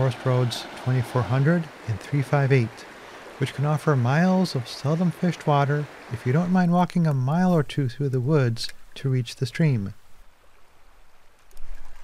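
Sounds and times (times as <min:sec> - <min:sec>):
stream flowing: 0:00.0 - 0:12.0.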